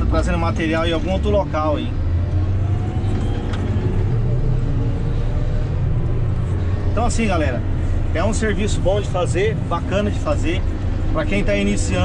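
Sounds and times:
diesel engine droning: 0:00.0 - 0:12.0.

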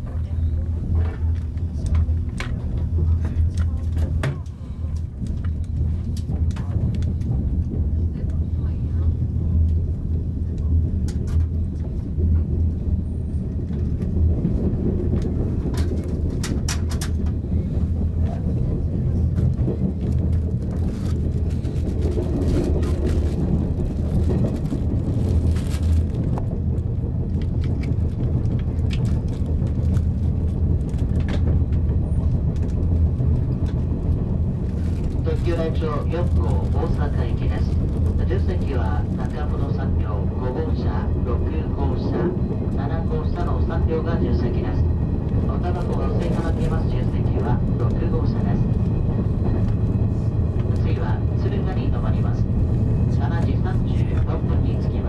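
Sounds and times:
train motors and wheels rumbling: 0:00.0 - 0:55.0.

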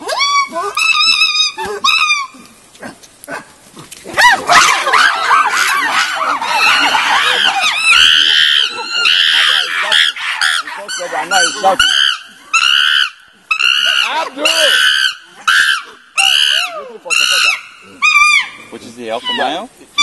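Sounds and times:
chimpanzees screaming: 0:00.0 - 0:02.5, 0:04.1 - 0:20.0
chimpanzees calling: 0:00.0 - 0:20.0.

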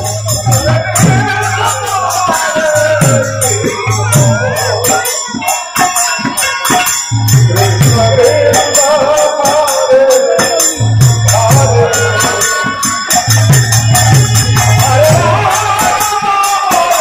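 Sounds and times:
barrel drums: 0:00.0 - 0:09.4
jingling hand cymbals: 0:00.0 - 0:17.0.

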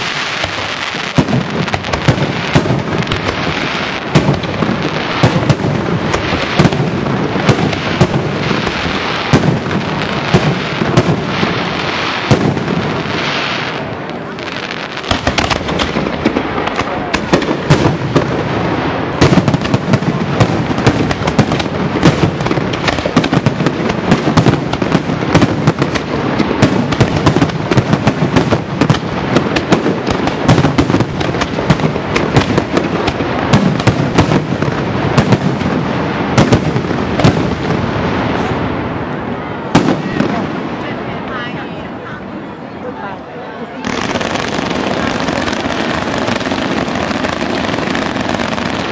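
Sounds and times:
firework shells bursting: 0:15.0 - 0:18.3.

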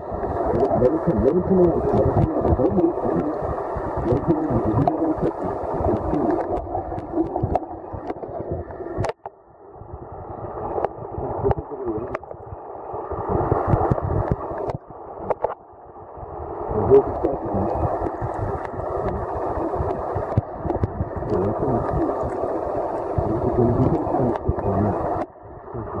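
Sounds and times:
muffled underwater noise: 0:00.0 - 0:15.6, 0:16.4 - 0:26.0.

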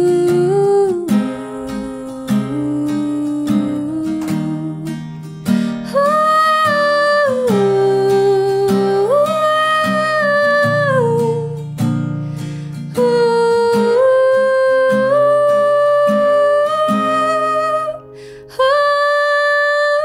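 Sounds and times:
strummed acoustic guitar: 0:00.0 - 0:20.0.

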